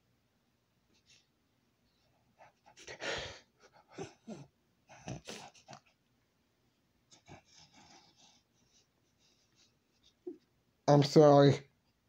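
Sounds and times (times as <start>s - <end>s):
man sobbing quietly: 2.6s - 5.8s.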